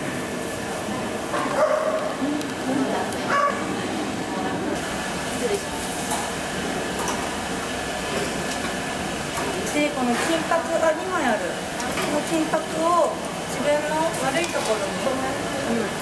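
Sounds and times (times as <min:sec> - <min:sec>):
busy hall background noise: 0:00.0 - 0:08.1.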